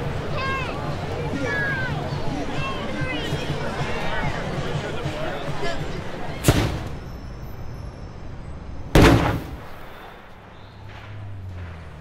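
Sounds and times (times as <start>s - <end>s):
loud blast bangs: 8.9s - 12.0s.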